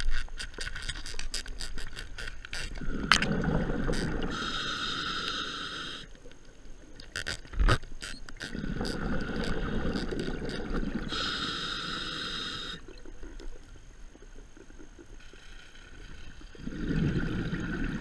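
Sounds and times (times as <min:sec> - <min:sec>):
bubbling exhalations underwater: 0:02.8 - 0:04.4, 0:08.4 - 0:11.1, 0:16.6 - 0:18.0
regulator inhalation hiss: 0:04.0 - 0:06.1, 0:11.0 - 0:12.9.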